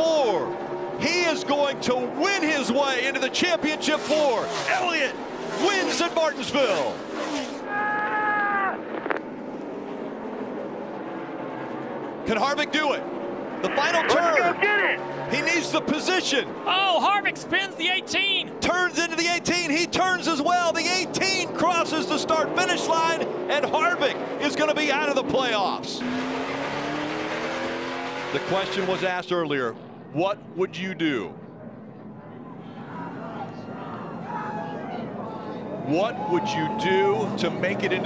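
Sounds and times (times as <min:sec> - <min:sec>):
race car engines droning: 0:00.0 - 0:38.0.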